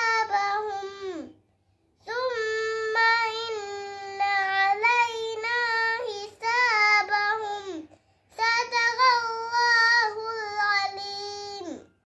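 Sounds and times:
girl chanting melodically: 0.0 - 1.4, 2.0 - 11.9.

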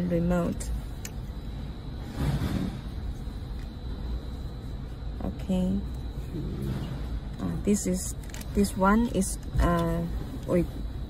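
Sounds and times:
low rumble of vehicle noise: 0.0 - 11.0.

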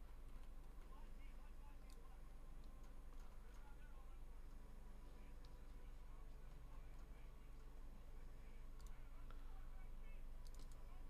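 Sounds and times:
low electrical hum: 0.0 - 11.0
faint indistinct voices: 0.7 - 11.0.

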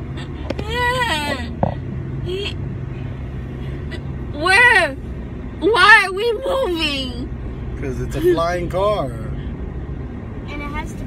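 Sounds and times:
car cabin road rumble: 0.0 - 11.0.

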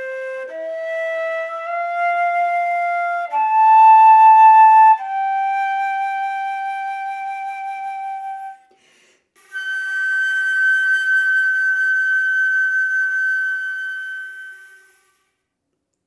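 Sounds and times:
flute holding long note: 0.0 - 8.7, 9.4 - 15.2
short breath: 8.7 - 9.5.

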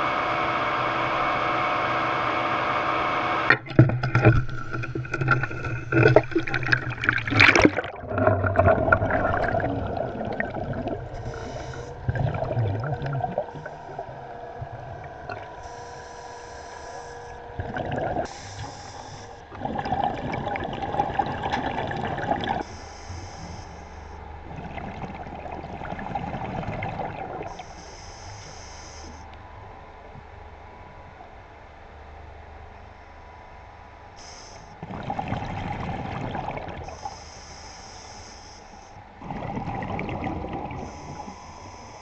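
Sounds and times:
exhaled bubbles rushing: 3.5 - 15.7, 17.3 - 18.8, 19.4 - 22.7, 24.3 - 27.6, 34.8 - 37.2, 39.1 - 41.4
diver breathing hiss: 11.1 - 12.1, 15.6 - 17.5, 18.2 - 19.5, 22.6 - 24.2, 27.5 - 29.3, 34.2 - 34.8, 36.9 - 39.1, 40.7 - 42.0.

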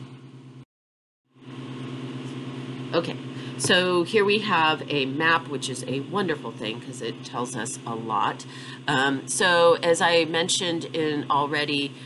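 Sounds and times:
low hum with faint hiss: 2.2 - 12.0.

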